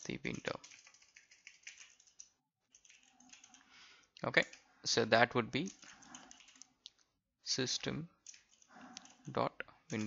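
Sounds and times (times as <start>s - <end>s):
typing on computer keyboard: 0.2s - 3.6s, 5.6s - 6.7s, 8.2s - 9.3s.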